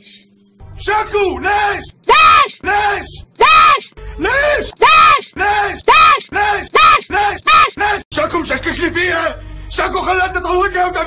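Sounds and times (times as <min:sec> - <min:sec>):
woman shouting: 0:02.1 - 0:02.6, 0:03.4 - 0:03.9, 0:04.8 - 0:05.3, 0:05.9 - 0:07.8.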